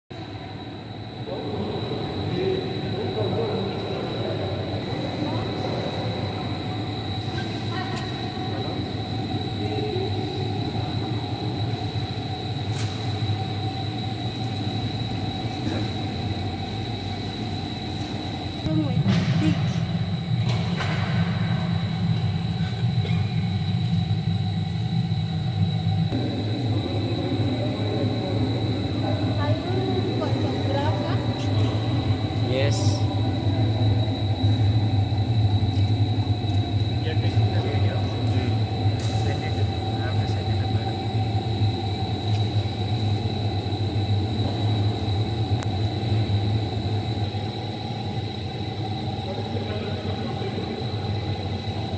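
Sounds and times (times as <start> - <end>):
coffee roaster rumble and hum: 0.2 - 51.9.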